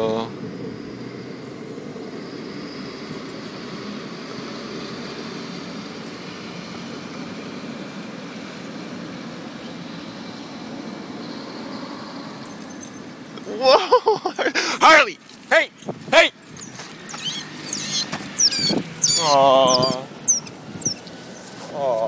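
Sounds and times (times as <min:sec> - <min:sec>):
street traffic hum: 0:00.0 - 0:22.0.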